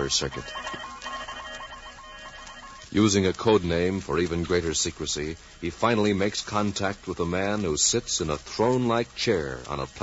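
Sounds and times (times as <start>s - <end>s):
steady high tones: 0.0s - 5.0s.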